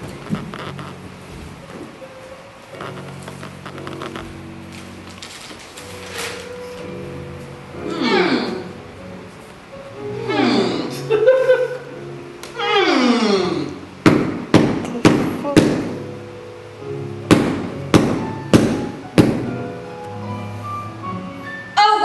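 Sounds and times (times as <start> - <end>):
soft background music: 0.0 - 22.0.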